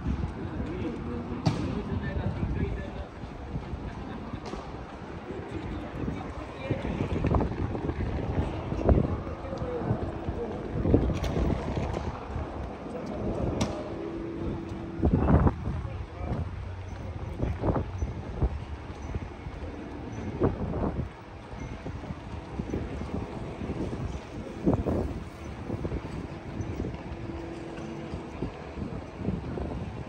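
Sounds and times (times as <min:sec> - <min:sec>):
low street hum: 0:00.0 - 0:30.0
passersby talking: 0:00.0 - 0:30.0.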